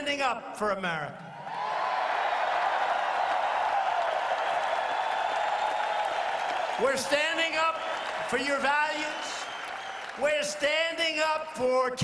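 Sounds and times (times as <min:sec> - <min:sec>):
crowd cheering: 0:01.4 - 0:11.1
crowd applauding: 0:01.5 - 0:11.0.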